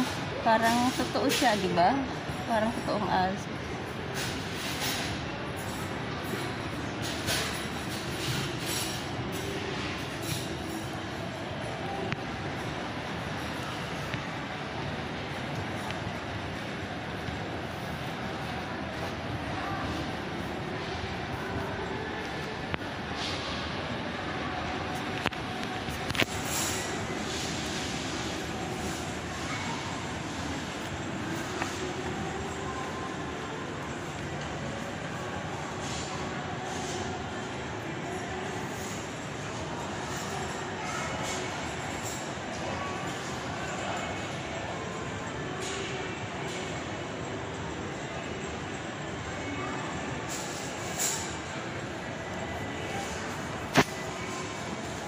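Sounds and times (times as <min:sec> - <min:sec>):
hum of mall hall: 0:00.0 - 0:55.0.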